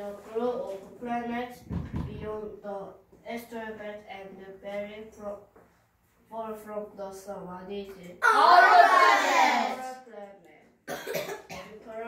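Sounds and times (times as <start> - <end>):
boy speaking: 0.0 - 5.5, 6.3 - 10.7, 11.7 - 12.0
boy coughing: 10.9 - 11.8.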